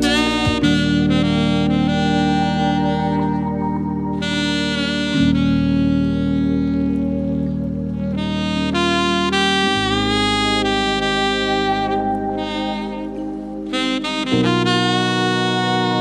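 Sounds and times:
bass: 0.0 - 16.0
saxophone playing slow melody: 0.0 - 16.0
sustained backing chords: 0.0 - 16.0.

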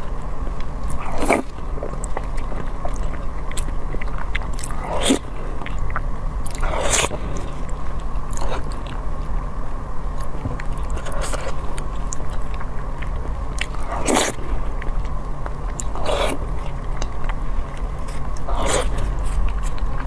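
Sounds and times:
wet bites and chewing: 10.2 - 20.0.

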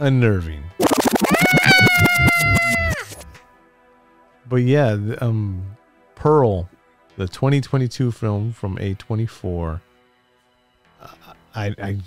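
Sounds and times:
person laughing and squealing: 0.8 - 3.4.

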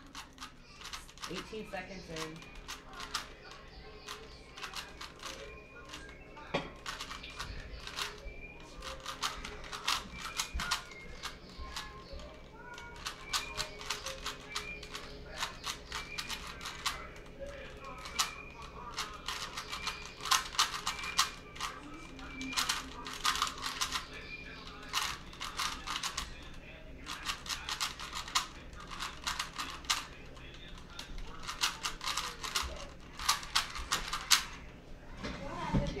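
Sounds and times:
puzzle cube plastic clicks: 0.0 - 6.2, 6.8 - 11.9, 12.8 - 17.0, 17.9 - 26.3, 27.0 - 30.2, 30.8 - 34.6.

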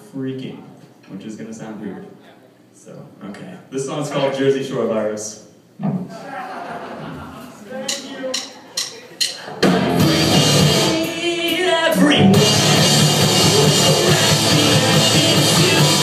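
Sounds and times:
loud rock band playing: 9.2 - 16.0.

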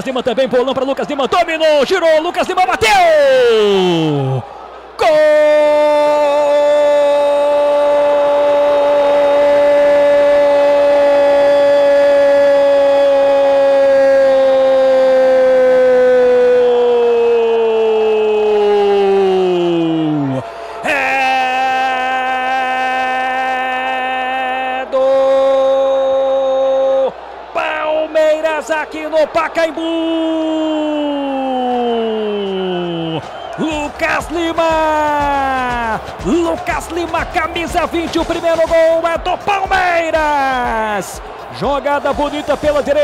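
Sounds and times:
commentator shouting goal: 0.0 - 43.0.

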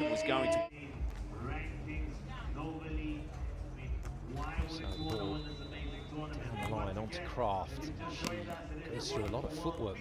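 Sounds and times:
voices talking: 4.4 - 10.0
referee's whistle: 4.6 - 6.4.

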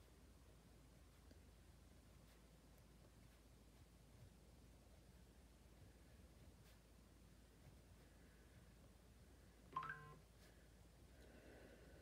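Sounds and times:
short electronic beep: 9.8 - 10.2.

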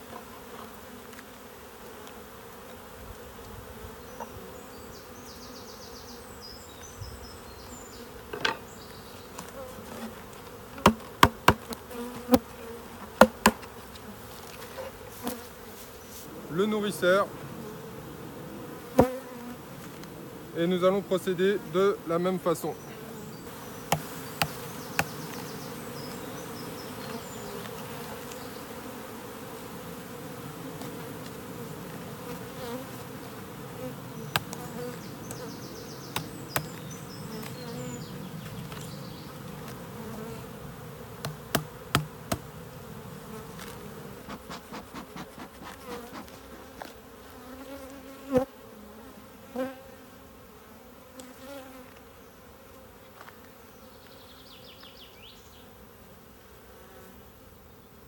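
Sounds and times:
bees buzzing: 0.0 - 58.0.

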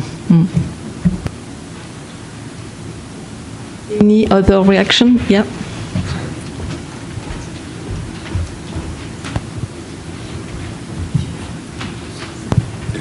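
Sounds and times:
microphone handling rumble: 0.0 - 1.7, 4.0 - 13.0
microphone knocks: 0.4 - 1.4, 5.9 - 9.8, 10.4 - 13.0.

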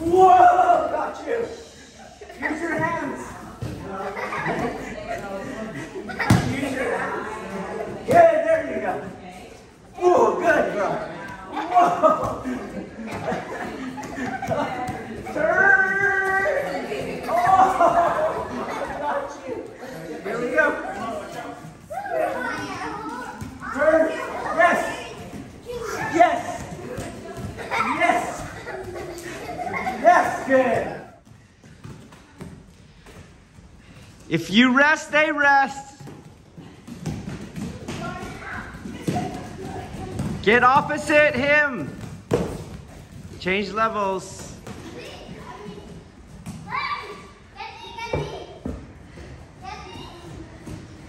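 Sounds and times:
children's voices at play: 9.7 - 30.5, 36.2 - 40.4, 44.6 - 51.0.

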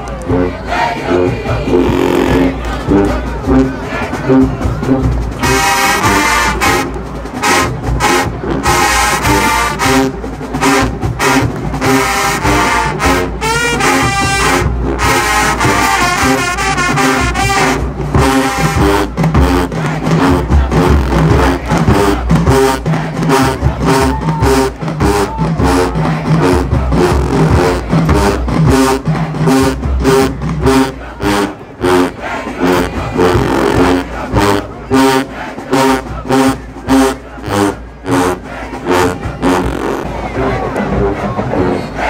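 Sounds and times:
brass horn chords: 0.1 - 42.0
steady drum beat: 0.6 - 41.7.

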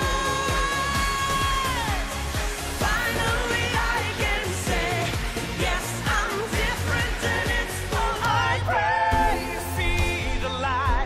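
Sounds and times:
steady dance beat: 0.0 - 8.6
woman singing with vibrato: 0.0 - 11.0.

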